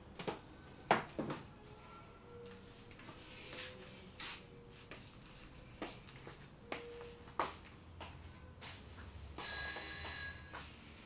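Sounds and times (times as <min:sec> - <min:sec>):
high bell-like ring: 0:09.4 - 0:10.6.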